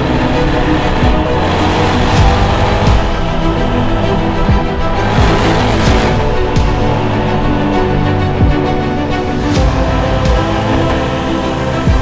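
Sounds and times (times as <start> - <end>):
music track: 0.0 - 12.0.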